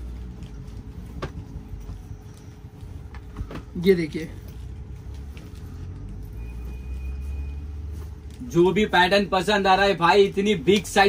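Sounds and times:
vehicle engine rumble passing: 4.3s - 9.8s.

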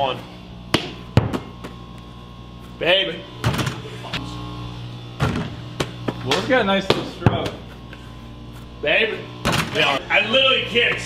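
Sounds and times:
steady background hum: 0.0s - 11.0s
basketball thudding on hard surface: 0.7s - 1.7s.

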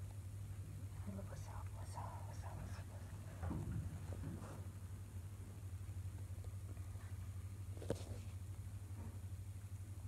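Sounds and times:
steady low hum: 0.0s - 10.0s
person whispering: 1.0s - 3.4s.

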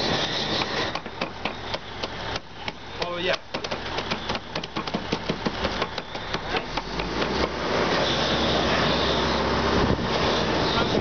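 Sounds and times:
low engine hum: 0.0s - 11.0s
crackling and tapping: 0.6s - 7.6s.

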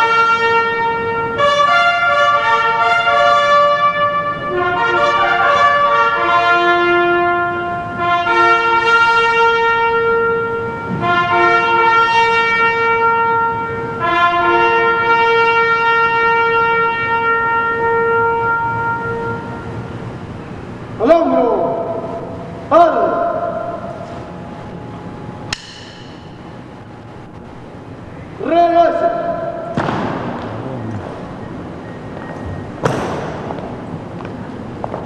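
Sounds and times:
brass instrument long note: 0.0s - 20.0s
sharp knock with metallic ring: 25.5s - 26.4s, 32.8s - 33.6s
low background hush: 26.2s - 32.8s.

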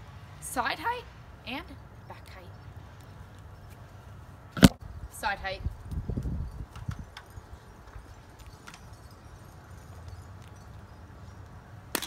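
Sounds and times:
wind rumble on microphone: 4.6s - 11.5s.

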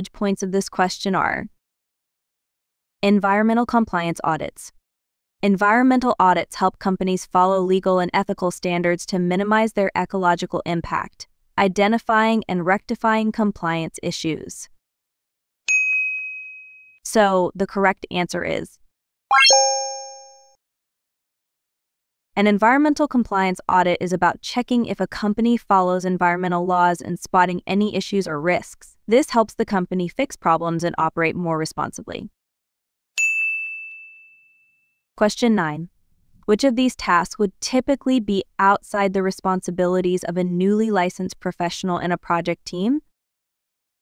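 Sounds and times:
bell-like ding: 15.7s - 17.0s, 19.3s - 20.5s, 33.2s - 34.8s.

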